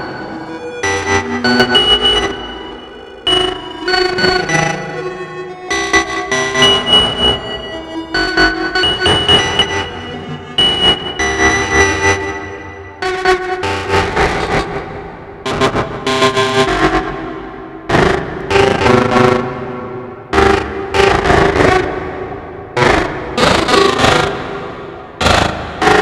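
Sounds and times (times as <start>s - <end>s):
synthesizer sequenced pattern: 0.0s - 26.0s.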